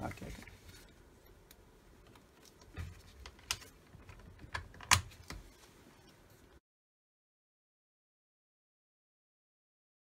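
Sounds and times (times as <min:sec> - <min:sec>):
sharp plastic clicks and knocks: 0:02.0 - 0:05.4.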